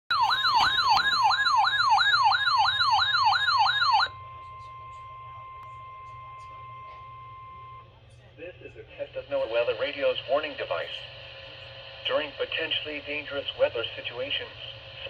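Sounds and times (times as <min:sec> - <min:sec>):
fast warbling siren: 0:00.1 - 0:04.3
steady warning tone: 0:00.1 - 0:15.0.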